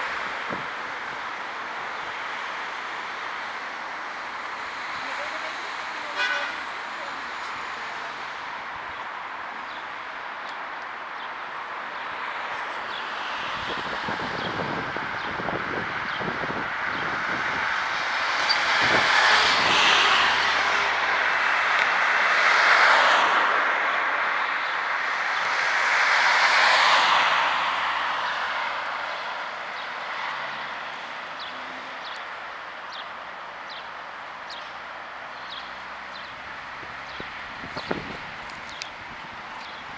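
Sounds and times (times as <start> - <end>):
cars passing: 0.0 - 39.9.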